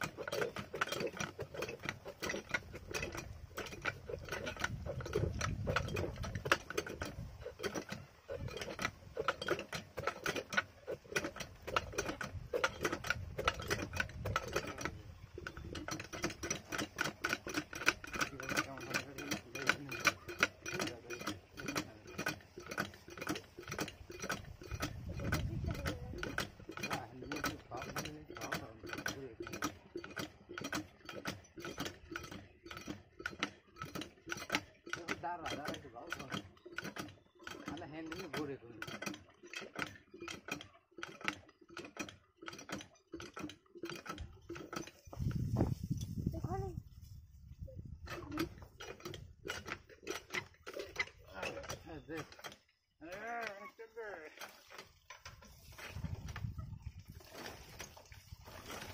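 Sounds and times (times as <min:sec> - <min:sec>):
engine hand crank clattering: 0:00.0 - 0:58.9.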